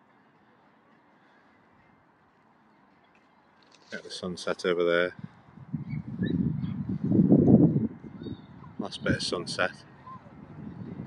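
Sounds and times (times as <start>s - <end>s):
faint outdoor background hiss: 0.0s - 11.0s.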